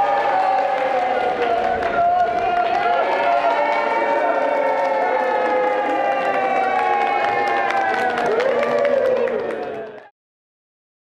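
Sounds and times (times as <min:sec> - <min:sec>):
group of people cheering: 0:00.0 - 0:10.1
people clapping: 0:00.0 - 0:10.1.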